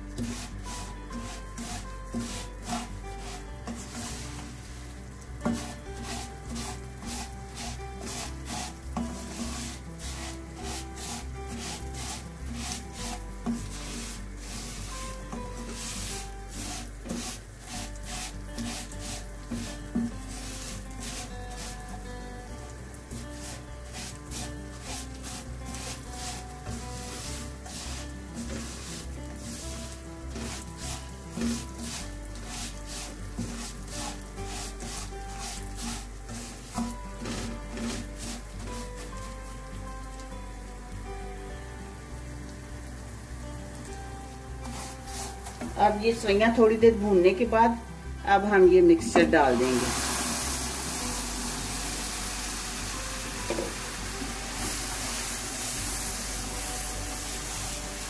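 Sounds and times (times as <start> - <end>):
spatula scraping a wok: 0.0 - 40.2, 44.0 - 47.3, 49.2 - 58.0.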